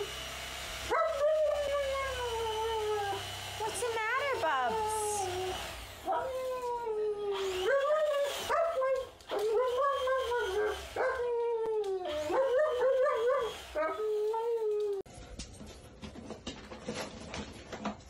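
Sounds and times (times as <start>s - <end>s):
dog howling and whining: 0.9s - 3.3s, 4.6s - 15.1s.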